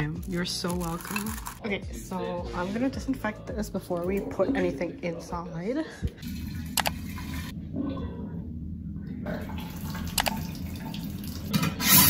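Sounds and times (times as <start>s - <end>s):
water running: 0.0s - 1.7s, 6.2s - 8.1s, 9.2s - 12.0s.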